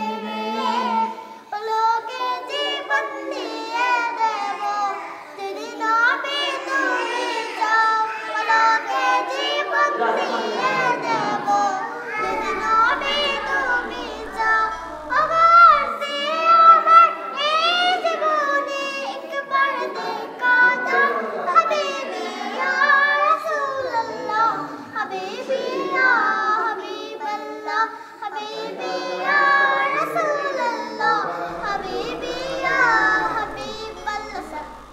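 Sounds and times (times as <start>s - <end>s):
girls singing in unison: 0.0s - 34.9s.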